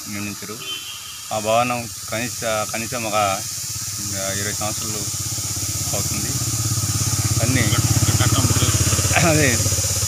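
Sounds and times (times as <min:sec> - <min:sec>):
motorcycle engine running: 0:00.7 - 0:10.0.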